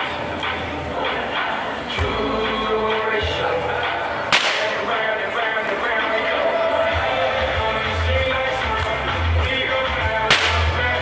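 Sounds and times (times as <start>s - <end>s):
music with heavy bass: 0.0s - 11.0s
whip crack: 4.3s - 4.8s, 10.3s - 10.8s.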